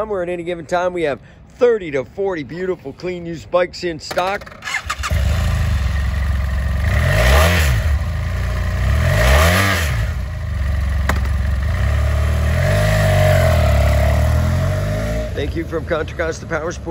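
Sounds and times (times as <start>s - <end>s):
motorcycle engine idling and revving: 4.4s - 16.9s.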